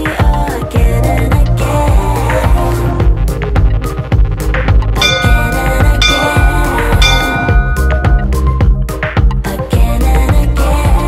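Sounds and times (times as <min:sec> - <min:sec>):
background music with steady beat: 0:00.0 - 0:11.0
bell-like countdown chime: 0:05.0 - 0:08.8.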